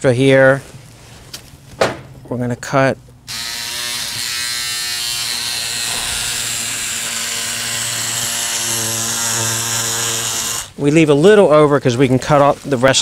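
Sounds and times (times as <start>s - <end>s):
electric scissors buzzing: 3.3s - 10.8s.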